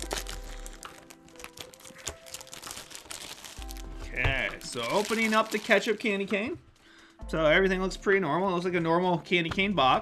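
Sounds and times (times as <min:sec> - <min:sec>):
packaging crinkling and clicking: 0:00.0 - 0:06.9
soft background music: 0:00.0 - 0:10.0.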